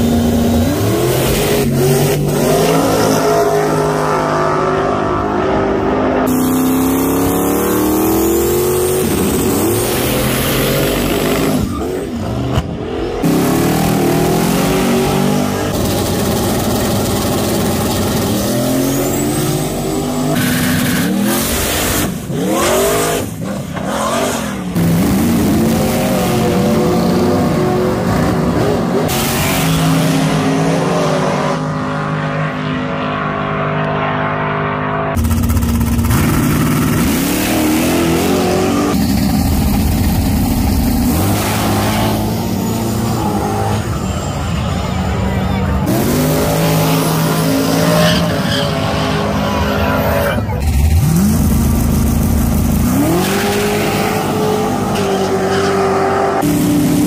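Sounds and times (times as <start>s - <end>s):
drag racing cars launching: 0.0s - 57.0s.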